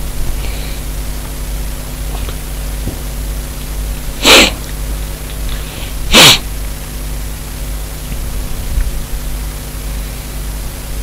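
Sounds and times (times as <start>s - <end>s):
person sneezing: 4.2s - 4.6s, 5.7s - 6.5s.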